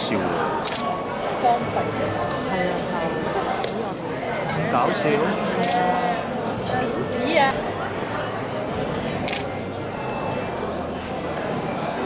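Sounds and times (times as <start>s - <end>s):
murmur of busy room: 0.0s - 12.0s.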